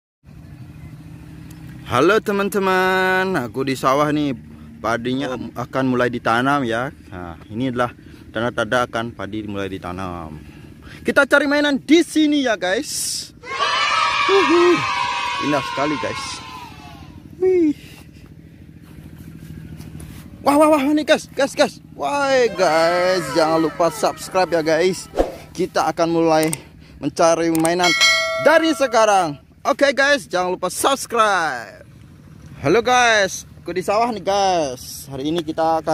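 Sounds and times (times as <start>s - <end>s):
distant engine hum: 0.3s - 35.9s
small engine humming: 13.4s - 25.6s.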